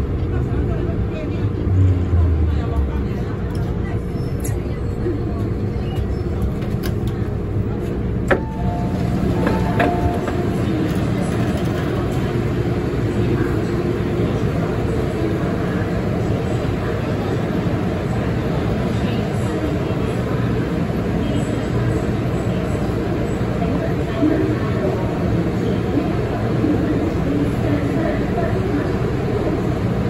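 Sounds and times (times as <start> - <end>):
people's voices on platform: 0.0 - 30.0
train hum: 0.0 - 30.0
train doors clunking open: 8.2 - 11.6.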